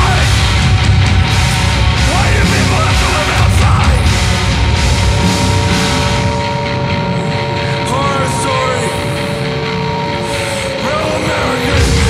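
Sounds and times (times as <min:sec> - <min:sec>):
distorted guitar drone: 0:00.0 - 0:12.0
squealing feedback glides: 0:03.1 - 0:12.0.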